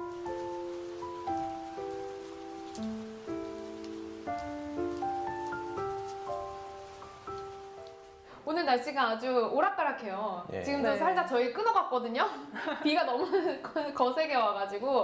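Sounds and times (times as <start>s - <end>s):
gentle music with sustained notes: 0.0s - 8.4s
rain falling on stone and plants: 0.0s - 9.4s, 12.5s - 15.0s.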